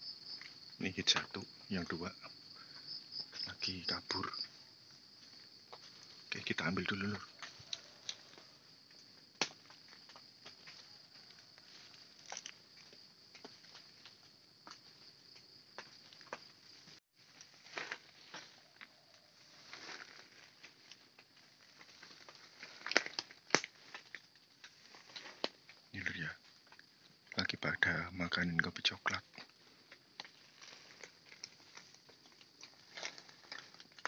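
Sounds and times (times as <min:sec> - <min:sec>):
high-pitched insect chorus: 0:00.0 - 0:34.0
twigs snapping: 0:07.3 - 0:11.4, 0:12.1 - 0:12.6, 0:17.3 - 0:27.4, 0:29.3 - 0:34.0
footsteps crunching through dry leaves: 0:17.2 - 0:25.9.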